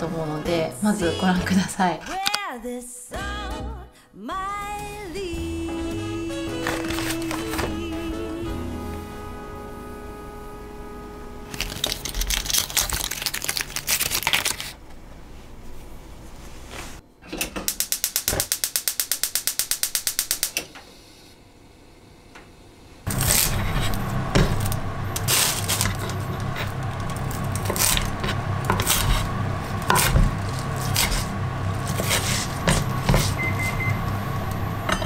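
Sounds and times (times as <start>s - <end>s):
steady low hum: 4.7s - 14.0s, 19.1s - 35.0s
knife cutting leafy greens: 6.6s - 7.7s, 23.1s - 33.4s
knife striking cutting board: 29.9s - 31.3s, 31.9s - 33.4s.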